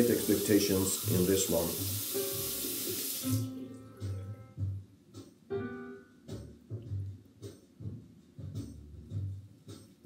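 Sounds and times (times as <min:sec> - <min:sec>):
tap water running into sink: 0:00.0 - 0:03.5
soft background music: 0:00.0 - 0:10.0.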